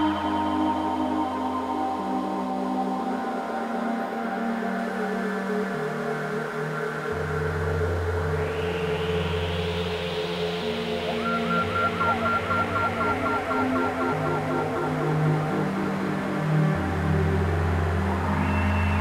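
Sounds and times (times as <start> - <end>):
synthesizer ambient drone: 0.0 - 19.0
glitchy repeating chirps: 11.0 - 16.3.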